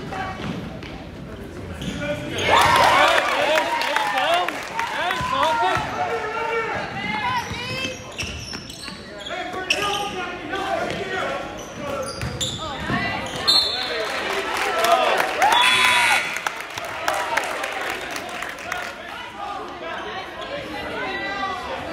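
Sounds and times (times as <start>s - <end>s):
sneaker squeaks: 1.4s - 2.7s, 6.9s - 14.0s
referee's whistle: 13.4s - 14.0s.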